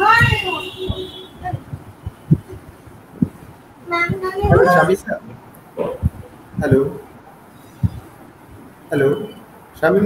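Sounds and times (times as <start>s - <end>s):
dull low thumps: 0.0s - 7.1s, 7.8s - 8.7s.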